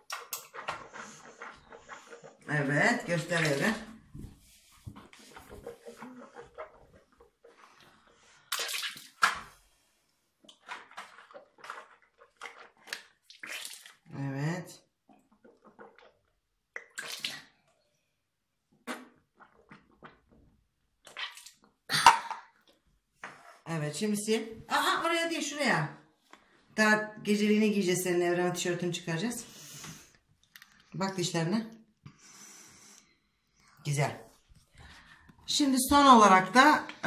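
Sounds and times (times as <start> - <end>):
child rinsing mouth and spitting: 0.0 - 18.0, 18.7 - 23.7.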